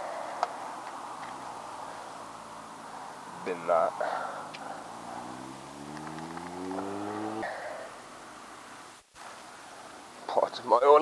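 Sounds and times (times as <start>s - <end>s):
man's low rising vocal sound: 1.8s - 8.1s.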